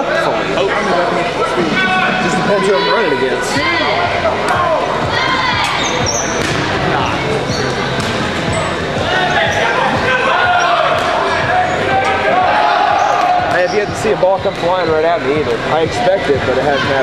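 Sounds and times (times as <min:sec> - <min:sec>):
players shouting: 0:00.7 - 0:14.5
balls bouncing on hardwood floor: 0:05.6 - 0:06.7, 0:08.0 - 0:08.2.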